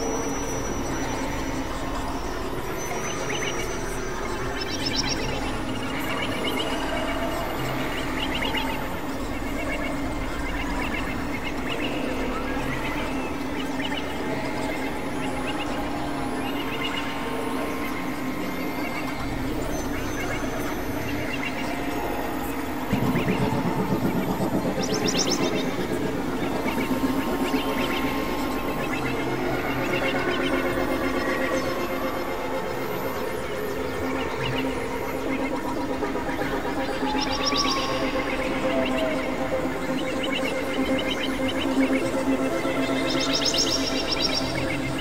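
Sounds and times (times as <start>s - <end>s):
synthesizer drones: 0.0s - 45.0s
squawky synth chirps: 20.3s - 30.0s.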